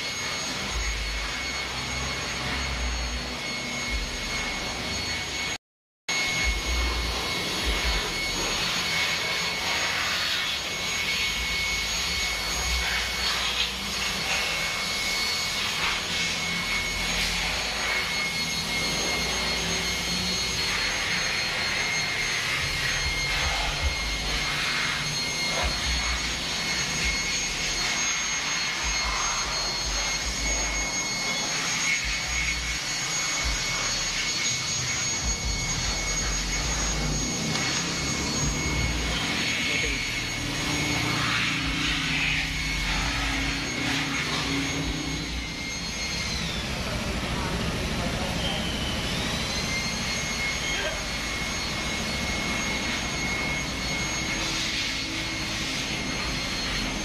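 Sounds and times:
high steady machine whine: 0.0 - 57.0.

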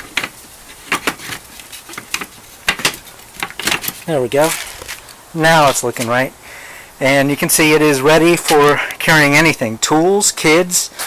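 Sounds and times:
wooden rail knocking on metal brackets: 0.0 - 4.0.

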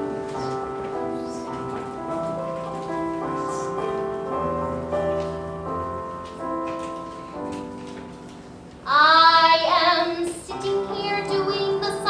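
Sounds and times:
piano playing: 0.0 - 12.0
woman singing with vibrato: 8.9 - 12.0.

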